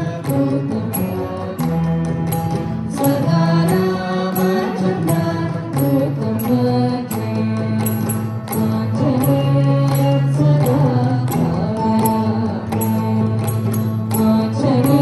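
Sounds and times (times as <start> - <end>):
group singing in unison: 3.0 - 6.9.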